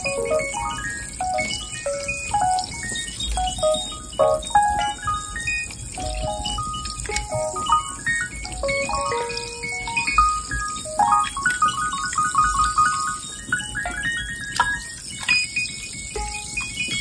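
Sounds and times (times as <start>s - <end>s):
fast piano playing: 0.0s - 14.5s.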